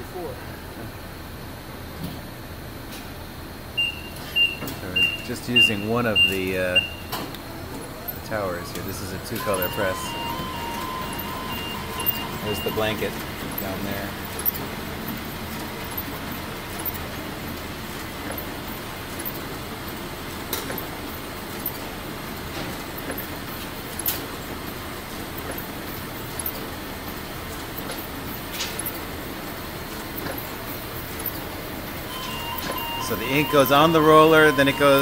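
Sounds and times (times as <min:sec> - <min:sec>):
printing press running: 0:03.8 - 0:35.0.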